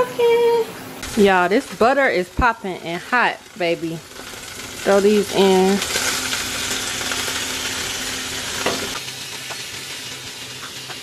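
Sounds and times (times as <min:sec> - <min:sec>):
steak sizzling in a frying pan: 0:01.0 - 0:11.0.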